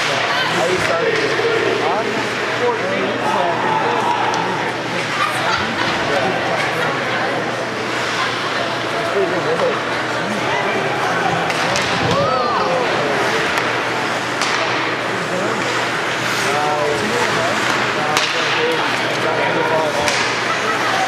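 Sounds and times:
spectators chattering: 0.0s - 21.0s
hockey sticks and puck knocking: 13.4s - 14.9s, 17.2s - 19.2s, 20.1s - 20.4s.

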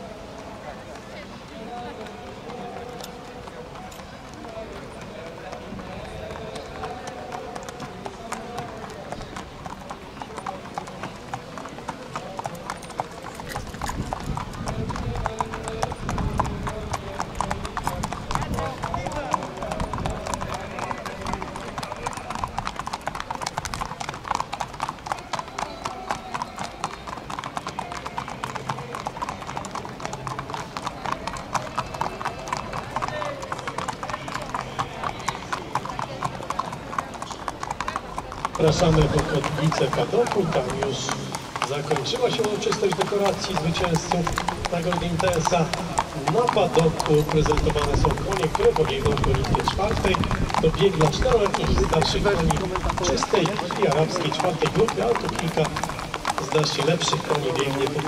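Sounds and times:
hooves clip-clopping on pavement: 0.0s - 58.0s.

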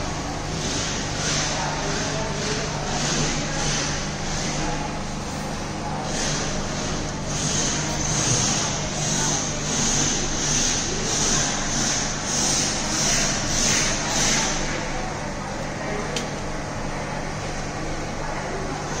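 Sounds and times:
refrigeration machine hum: 0.0s - 19.0s.

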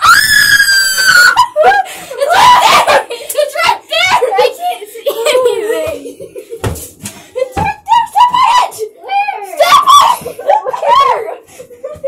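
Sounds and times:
girl crying out high-pitched: 7.9s - 11.2s.

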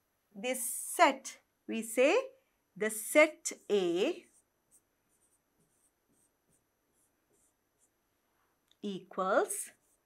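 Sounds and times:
pen scratching on whiteboard: 3.5s - 8.0s, 9.6s - 10.0s.

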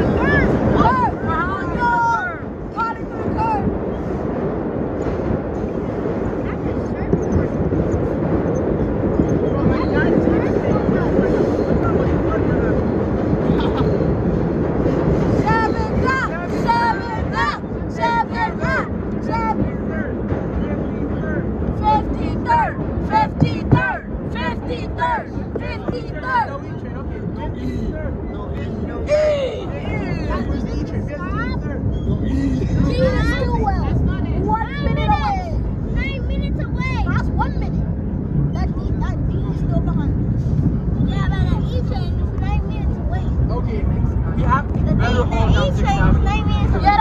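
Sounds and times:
subway train rumbling in tunnel: 0.0s - 47.0s
voices chattering and calling out: 0.0s - 47.0s.

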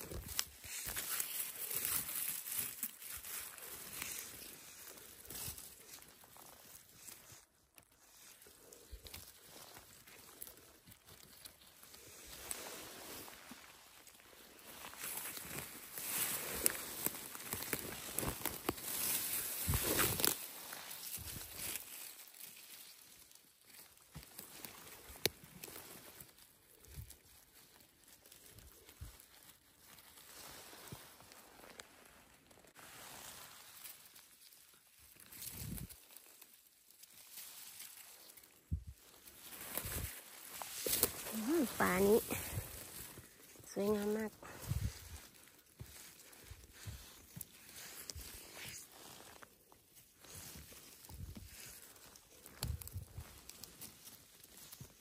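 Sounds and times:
leaves and twigs rustling: 0.0s - 55.0s.

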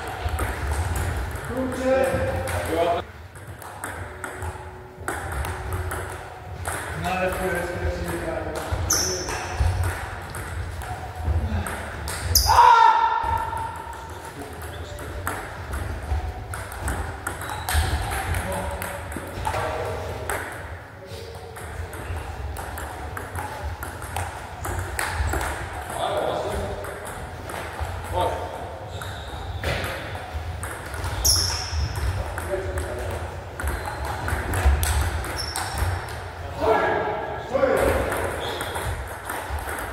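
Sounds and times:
table tennis ball hits: 0.0s - 20.8s, 21.4s - 36.3s, 37.6s - 39.9s.

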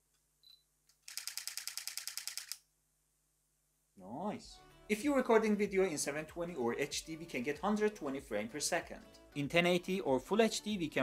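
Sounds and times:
camera shutter clicking rapidly: 1.0s - 2.6s.

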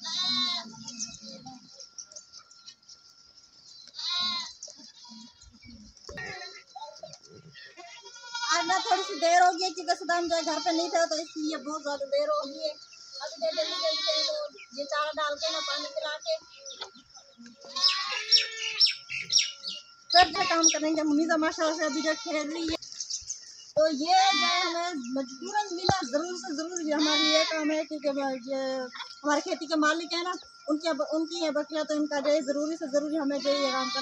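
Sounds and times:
goat bleating: 0.0s - 1.2s, 4.0s - 5.4s, 6.2s - 6.7s, 7.5s - 9.6s, 10.2s - 11.2s, 13.3s - 14.6s, 15.2s - 16.1s, 17.6s - 18.8s, 20.2s - 22.8s, 24.0s - 26.0s, 26.8s - 27.8s, 33.2s - 34.0s
small bird chirping: 10.9s - 20.9s, 22.6s - 23.8s.

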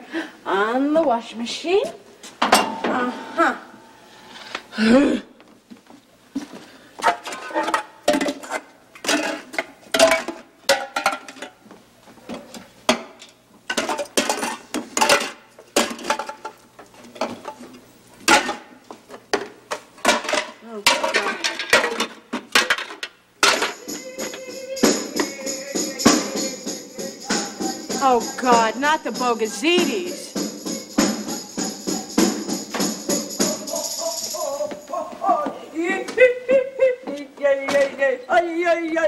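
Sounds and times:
kitchen objects clattering: 7.0s - 11.6s, 12.3s - 18.7s, 19.4s - 25.4s
music with bells and tambourine: 23.5s - 35.0s.

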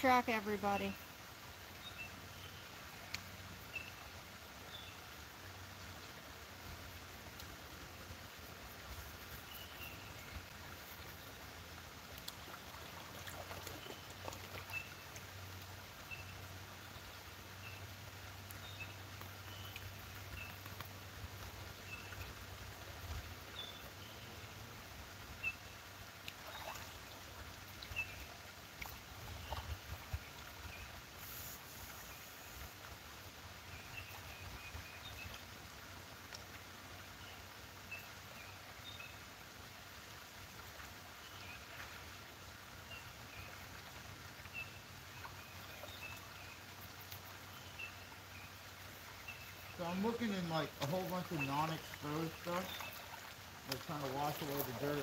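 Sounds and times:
faint outdoor background noise: 0.0s - 55.0s
songbirds chirping: 0.0s - 55.0s.

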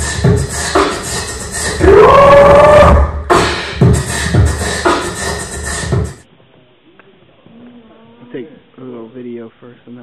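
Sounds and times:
loud hip-hop music: 0.0s - 6.2s.

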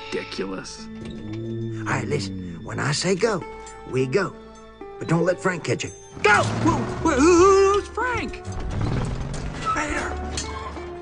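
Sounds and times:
truck body rattling and clanking: 6.2s - 11.0s.

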